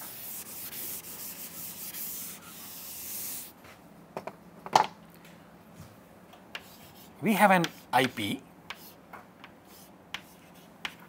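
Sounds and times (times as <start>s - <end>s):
eraser rubbing on chalkboard: 0.0s - 3.5s, 6.6s - 9.0s, 9.7s - 11.0s.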